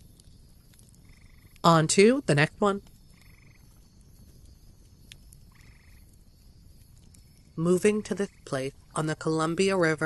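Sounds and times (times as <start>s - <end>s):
short pulsed animal calls: 1.0s - 1.7s, 3.0s - 7.5s.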